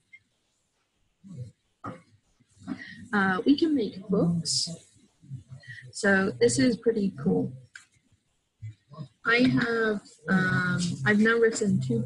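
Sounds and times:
woman speaking: 2.7s - 4.8s, 5.8s - 7.5s, 9.3s - 12.0s.

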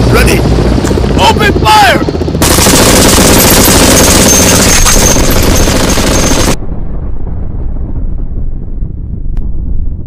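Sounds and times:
automatic gunfire: 2.4s - 6.6s.

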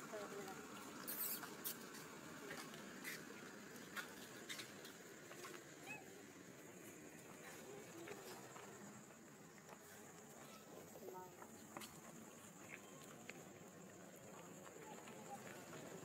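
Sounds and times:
monkey squeaking: 1.0s - 1.8s.

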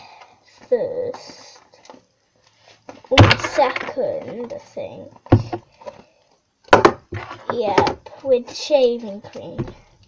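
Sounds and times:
plastic tub knocking on table: 6.7s - 8.0s.

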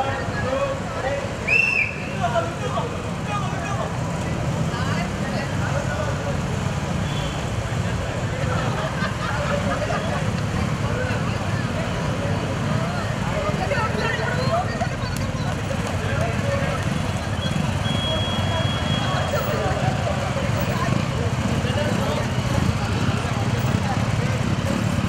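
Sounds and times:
motorcycle engines humming: 0.0s - 25.0s
onlookers chattering: 0.0s - 25.0s.

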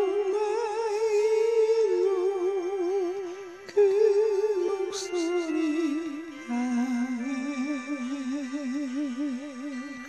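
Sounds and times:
karaoke backing track: 0.0s - 10.0s
person singing high notes: 0.0s - 10.0s.

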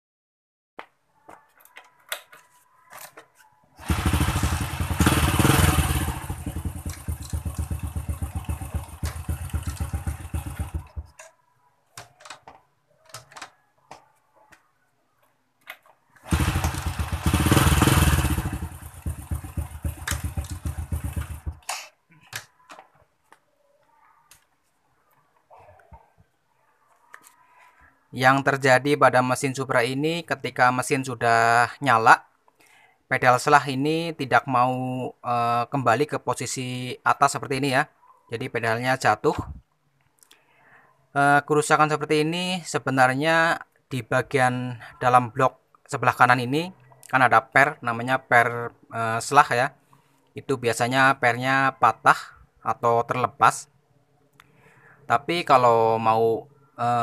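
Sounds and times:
motorcycle engine running: 3.8s - 11.1s, 16.3s - 21.6s.

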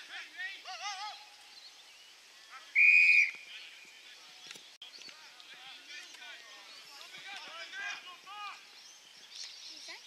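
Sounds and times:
umpire's whistle blast: 2.8s - 3.4s.

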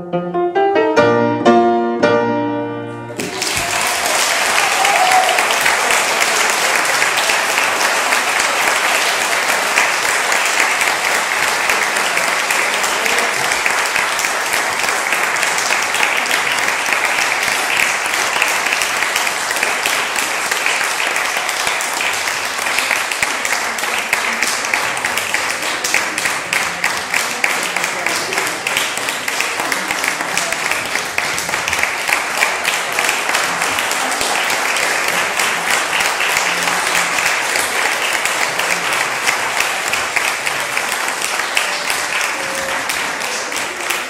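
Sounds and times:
audience applauding: 3.2s - 44.0s.

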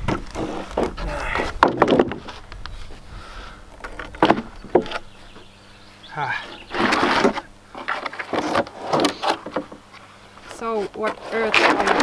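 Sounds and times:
wooden board scraping: 0.0s - 5.1s, 6.4s - 12.0s.

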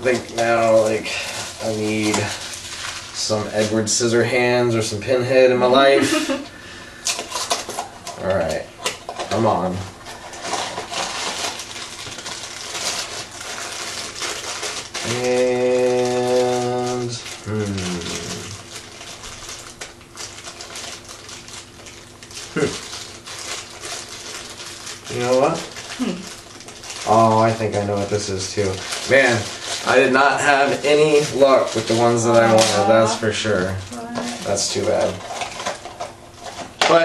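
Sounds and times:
packaging crinkling and tearing: 0.0s - 4.2s, 7.0s - 37.0s
person humming: 15.0s - 18.6s, 22.5s - 22.8s
short vocal sounds: 17.4s - 18.6s, 22.5s - 22.8s.

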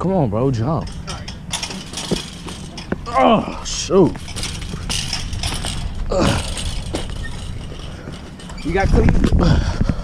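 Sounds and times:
chain-link fence rattling: 0.4s - 9.3s.

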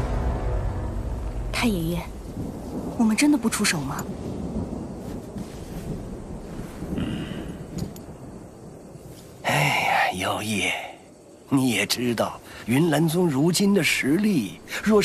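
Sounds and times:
person sighing: 6.9s - 7.7s.

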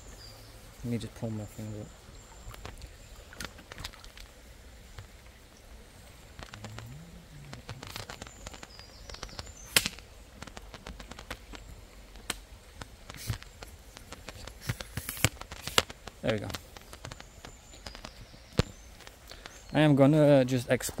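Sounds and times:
twigs snapping: 2.5s - 5.2s, 6.3s - 19.6s
footsteps on dry twigs and leaves: 7.5s - 19.6s.

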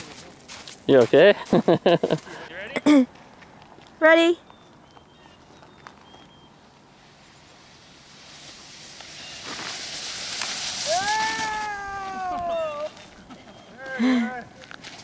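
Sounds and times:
snowboard scraping over snow: 7.0s - 13.3s
person yelling: 10.8s - 13.0s.

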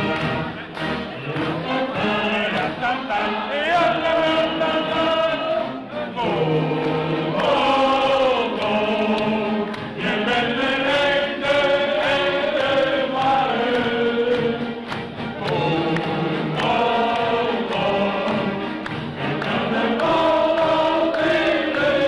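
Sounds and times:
crowd singing along: 0.0s - 22.0s
wind band music: 0.0s - 22.0s.

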